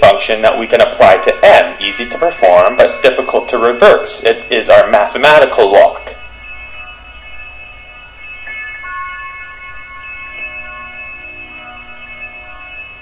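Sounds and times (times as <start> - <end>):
ambient electronic music: 0.0 - 13.0.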